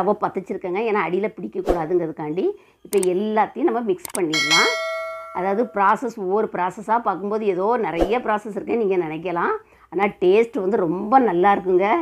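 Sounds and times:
woman speaking: 0:00.0 - 0:04.8, 0:05.4 - 0:12.0
notification bell ding: 0:04.1 - 0:06.0.

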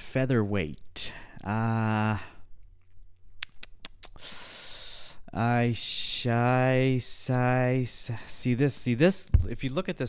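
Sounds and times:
breathy exhale: 0:04.2 - 0:05.2.

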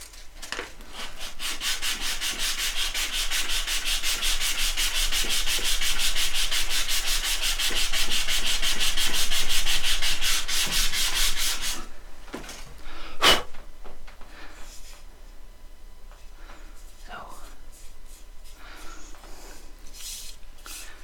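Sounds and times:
sandpaper sanding wood: 0:00.9 - 0:11.8, 0:19.9 - 0:21.0.

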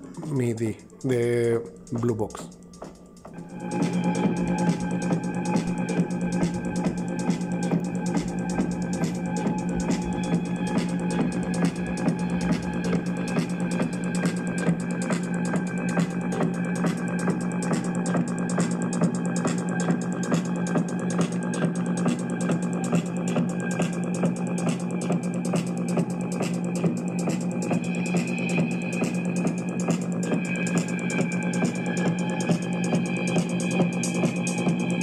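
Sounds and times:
fast electronic drum pattern: 0:00.0 - 0:35.0
higher sustained synth tones: 0:01.6 - 0:17.7
held low synth note: 0:03.4 - 0:15.0.

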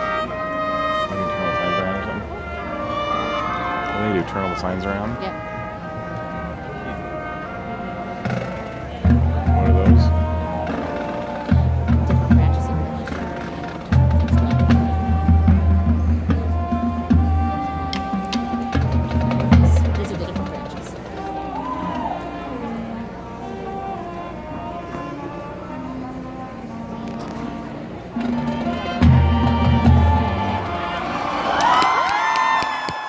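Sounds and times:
marching band playing: 0:00.0 - 0:32.8.

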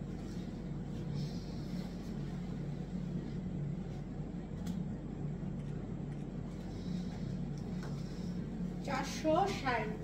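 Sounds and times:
low hum of machinery or traffic: 0:00.0 - 0:10.0.

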